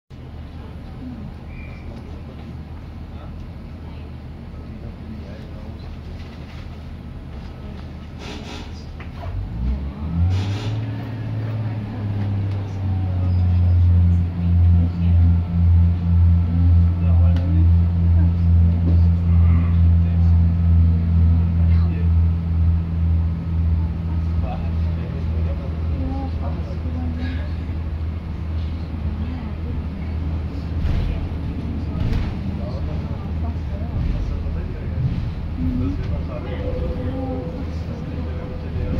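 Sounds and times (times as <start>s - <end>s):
diesel engine throbbing drone: 9.2s - 38.9s.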